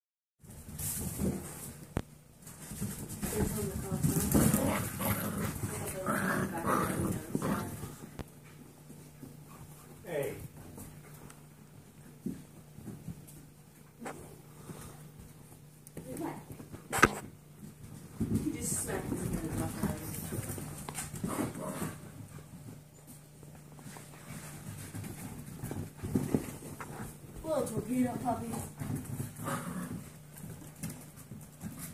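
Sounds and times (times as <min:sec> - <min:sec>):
paws clicking on floor: 0:00.4 - 0:31.9
puppies play-fighting: 0:00.5 - 0:31.9.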